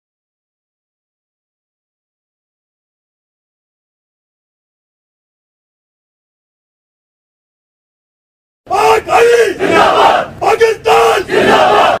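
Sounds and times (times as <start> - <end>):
men shouting in unison: 8.7 - 12.0.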